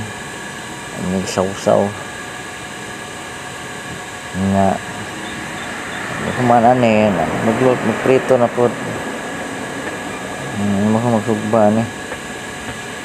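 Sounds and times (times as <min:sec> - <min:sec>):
steady background hiss: 0:00.0 - 0:13.0
man speaking: 0:04.4 - 0:05.1, 0:06.0 - 0:09.2, 0:10.4 - 0:11.9.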